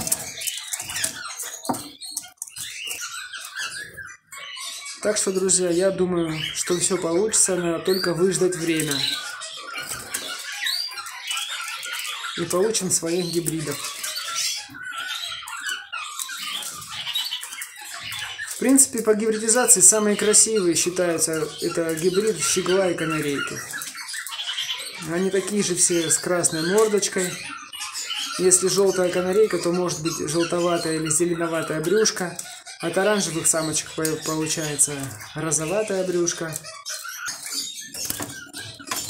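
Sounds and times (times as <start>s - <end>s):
bird chirps and twitters: 0.0s - 39.0s.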